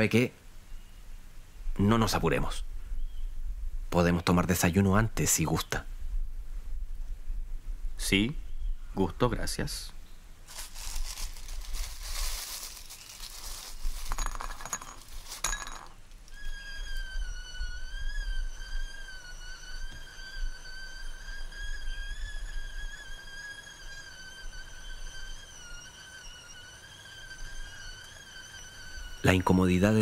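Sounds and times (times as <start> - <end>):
high steady whistling tone: 10.8 - 30.0.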